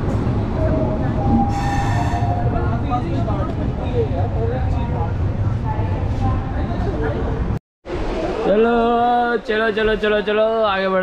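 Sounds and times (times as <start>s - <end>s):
train rumbling: 0.0s - 8.5s
brief shrill tone: 1.2s - 2.6s.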